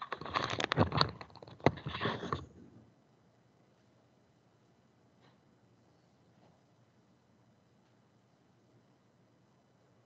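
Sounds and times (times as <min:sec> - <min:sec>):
irregular clicks and crackling: 0:00.0 - 0:02.5.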